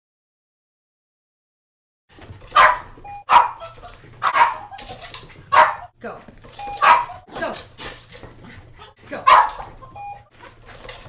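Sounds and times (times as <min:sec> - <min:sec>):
dog barking: 0:02.5 - 0:06.0, 0:06.7 - 0:07.3, 0:08.8 - 0:10.1.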